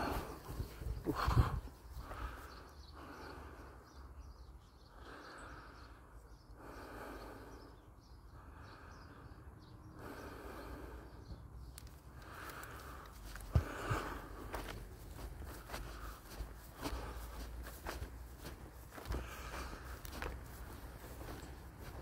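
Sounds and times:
low microphone rumble: 0:00.0 - 0:02.3
person breathing: 0:00.0 - 0:04.2, 0:04.8 - 0:22.0.

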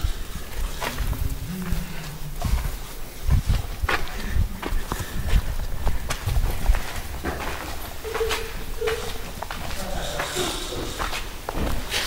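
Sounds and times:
footsteps on sandstone and grit: 0:00.1 - 0:12.0.

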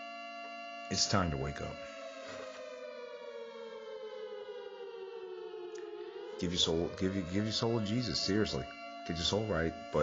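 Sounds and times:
air-raid siren winding down: 0:00.0 - 0:10.0.

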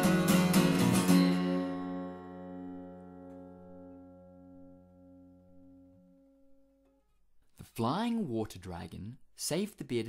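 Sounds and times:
strummed guitar chord: 0:00.0 - 0:06.6.

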